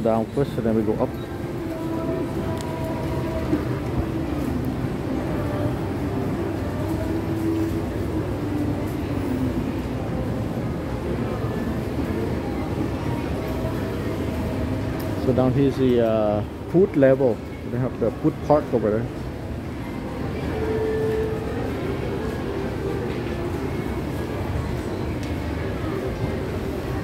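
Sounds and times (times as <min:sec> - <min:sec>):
murmur of voices: 0:00.0 - 0:27.0.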